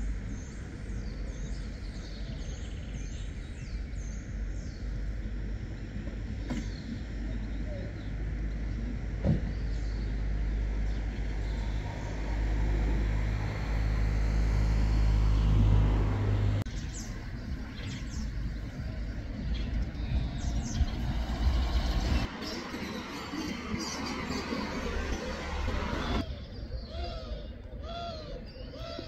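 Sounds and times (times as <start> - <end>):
traffic rumble: 0.0 - 29.0.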